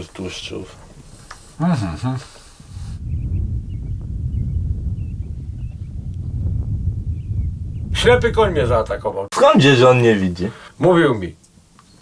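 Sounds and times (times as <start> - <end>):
small birds chirping: 0.0 - 9.0, 11.3 - 12.0
wind rumble on microphone: 2.5 - 9.3.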